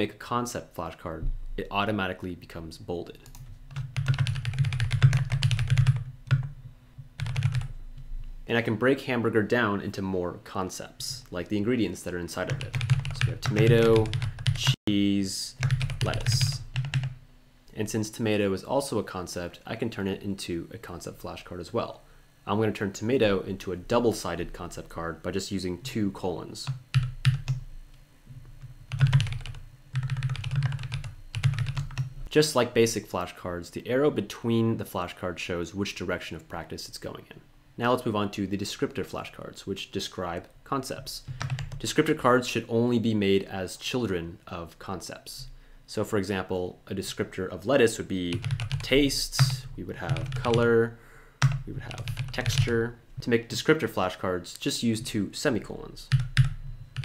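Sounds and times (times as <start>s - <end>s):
typing on computer keyboard: 3.3s - 6.5s, 7.2s - 7.7s, 12.5s - 14.8s, 15.6s - 17.2s, 26.6s - 27.6s, 28.9s - 32.1s, 41.3s - 41.8s, 48.3s - 50.6s, 51.4s - 52.7s, 56.1s - 57.0s.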